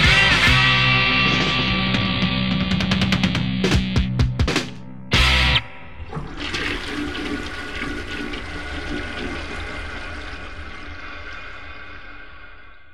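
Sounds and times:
toilet flushing: 5.8 - 12.9.

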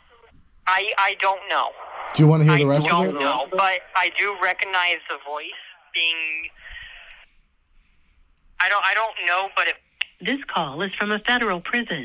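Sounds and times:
man speaking on phone: 2.2 - 3.6.

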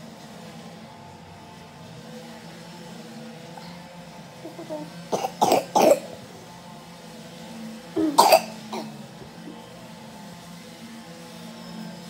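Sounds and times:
person coughing: 4.5 - 6.2, 8.0 - 9.0.

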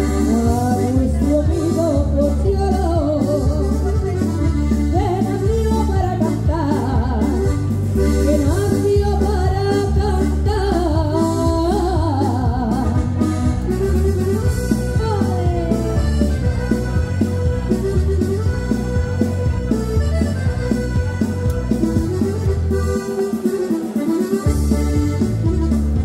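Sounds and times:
woman singing: 0.0 - 4.2, 4.9 - 13.1, 14.9 - 16.0
piano accordion: 0.0 - 26.0.

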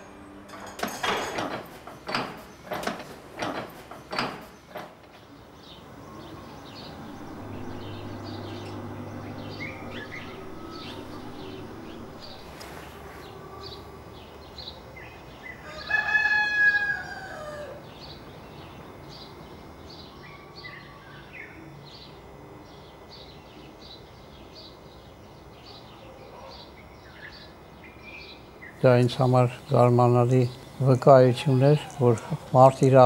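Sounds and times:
small birds chirping: 4.0 - 15.6
rooster crowing: 6.1 - 14.2, 15.4 - 18.0, 30.8 - 32.9.

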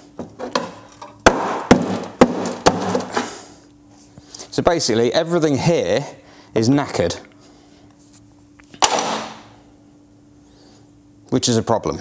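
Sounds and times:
sharp knock: 1.3 - 3.1.

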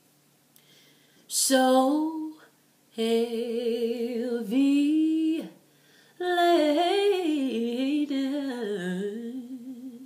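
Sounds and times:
woman singing a cappella: 1.3 - 10.0.

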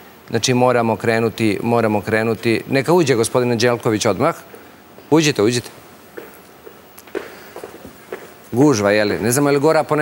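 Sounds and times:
footsteps on hard floor: 6.1 - 8.4.

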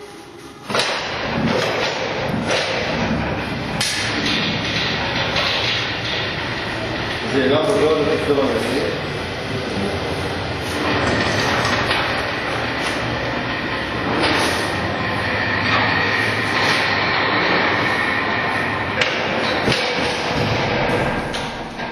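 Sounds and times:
automatic door rolling rumble: 0.0 - 21.9
high motor whine: 0.0 - 21.9.

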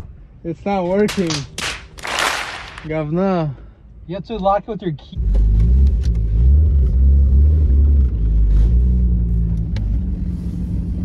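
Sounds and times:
car engine accelerating: 5.2 - 11.0.

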